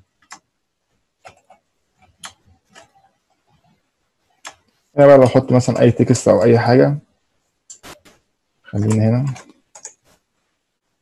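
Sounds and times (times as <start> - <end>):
computer mouse clicks: 0.2 - 0.5, 1.2 - 3.8, 4.4 - 4.8, 7.7 - 10.2.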